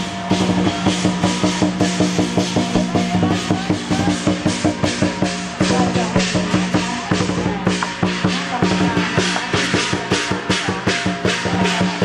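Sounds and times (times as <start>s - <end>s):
cymbals clashing: 0.0s - 12.0s
gongs: 0.0s - 12.0s
large drum beating: 0.0s - 12.0s.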